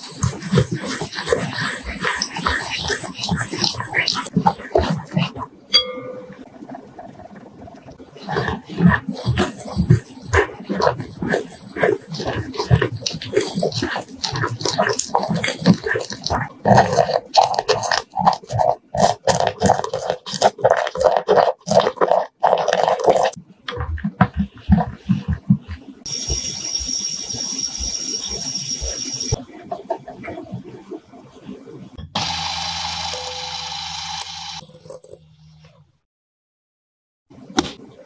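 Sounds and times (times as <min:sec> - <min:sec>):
whisk stirring thick batter: 0:00.0 - 0:05.4, 0:08.2 - 0:29.4.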